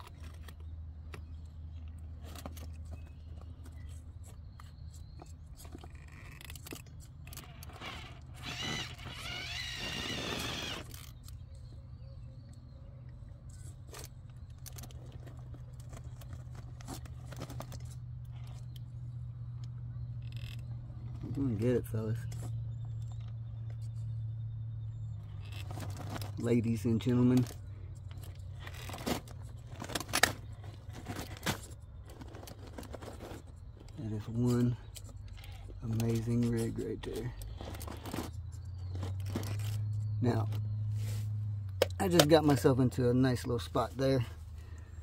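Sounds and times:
toy car drivetrain whining: 6.4s - 11.3s
electric motor hum: 7.4s - 11.2s.

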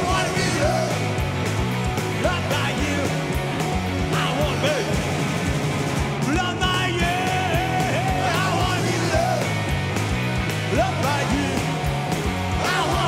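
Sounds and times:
live rock band playing: 0.0s - 13.0s.

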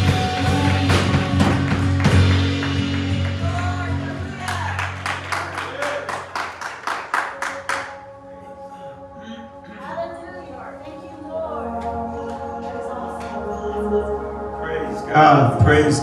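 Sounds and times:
evenly spaced handclaps: 0.0s - 8.0s
worship band playing: 0.0s - 16.0s.

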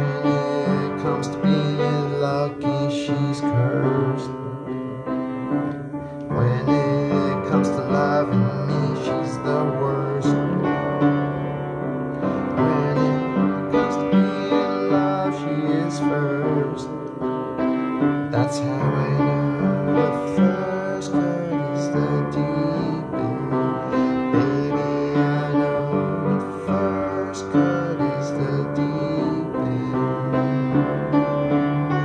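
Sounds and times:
piano chords: 0.0s - 32.0s.

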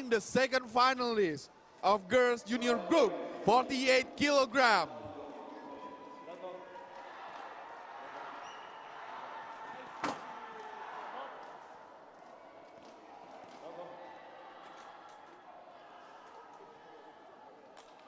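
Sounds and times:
echoing voices and murmur: 0.0s - 18.0s.

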